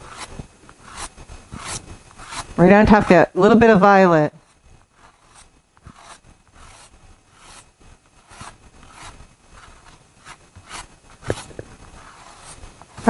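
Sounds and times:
pastel scratching across paper: 0:00.0 - 0:03.3, 0:04.4 - 0:13.0.

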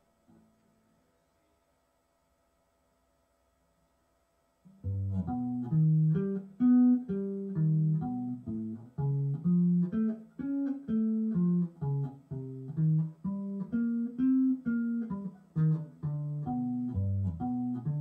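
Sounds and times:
electric bass guitar arpeggios: 0:04.8 - 0:18.0.

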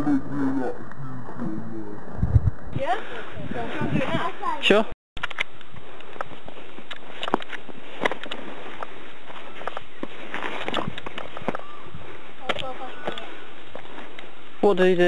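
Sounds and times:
footsteps running over rock: 0:05.7 - 0:14.2
faint voices: 0:09.3 - 0:13.6.

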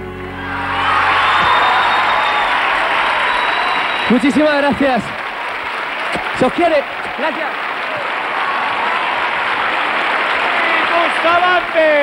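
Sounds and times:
band chord: 0:00.0 - 0:01.3
audience applause and cheering: 0:00.0 - 0:12.0.

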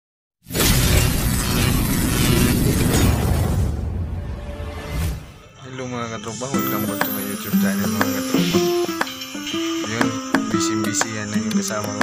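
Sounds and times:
loud burst of bass and hiss: 0:00.5 - 0:04.2.

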